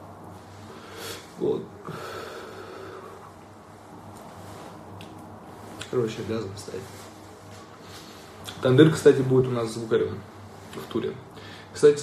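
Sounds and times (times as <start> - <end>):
low steady hum: 0.0 - 12.0
man exhaling: 0.8 - 3.3.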